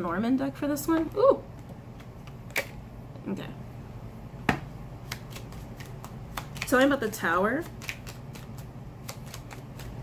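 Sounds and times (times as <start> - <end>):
cards being shuffled: 5.0 - 10.0.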